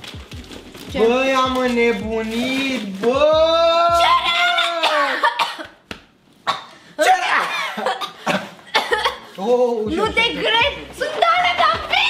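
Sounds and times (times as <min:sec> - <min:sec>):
excited voices exclaiming: 0:03.1 - 0:05.3, 0:10.0 - 0:12.0
cough-like bursts: 0:04.8 - 0:05.8, 0:06.4 - 0:09.2.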